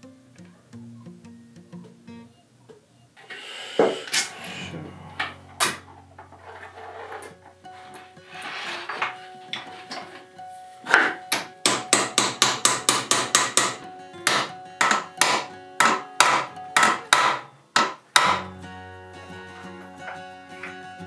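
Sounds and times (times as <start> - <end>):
hammer striking: 5.2 - 5.9, 10.9 - 18.5.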